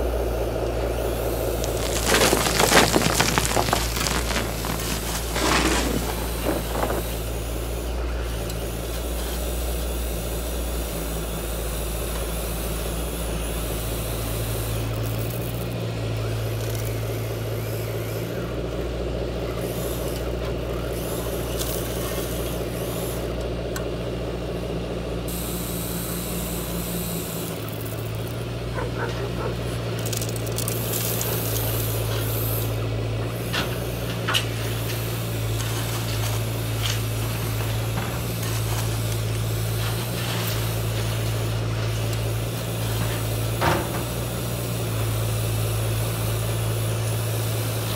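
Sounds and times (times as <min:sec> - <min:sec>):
gravel clattering from bucket: 0:01.3 - 0:07.6, 0:28.8 - 0:32.7, 0:33.4 - 0:44.4.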